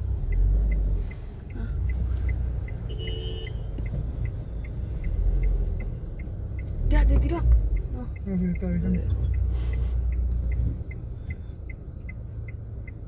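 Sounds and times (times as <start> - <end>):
car rumbling: 0.0 - 13.0
car turn signal ticking: 0.0 - 13.0
two-tone car horn beep: 2.7 - 3.8.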